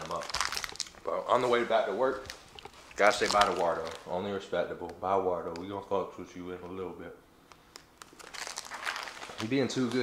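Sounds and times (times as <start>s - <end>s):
plastic pouch crinkling: 0.0s - 4.4s, 7.7s - 10.0s.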